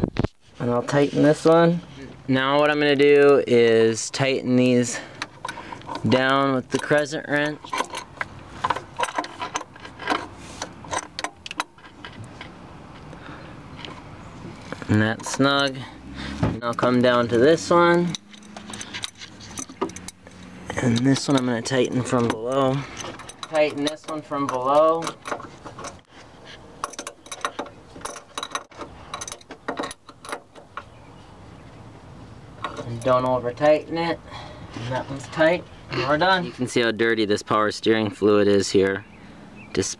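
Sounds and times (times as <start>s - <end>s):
wrench clinking on steel fitting: 17.9s - 26.0s, 26.8s - 30.6s.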